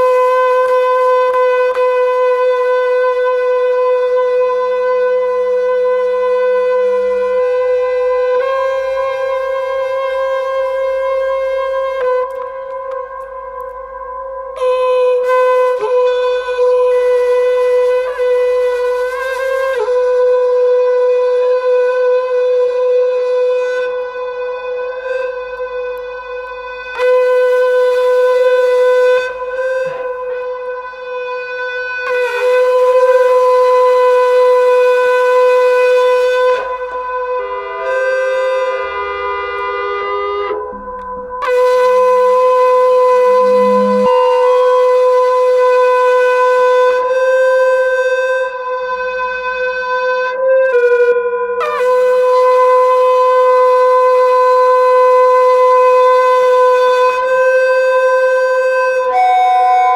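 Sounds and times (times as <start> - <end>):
long wind instrument note: 5.1 - 59.9.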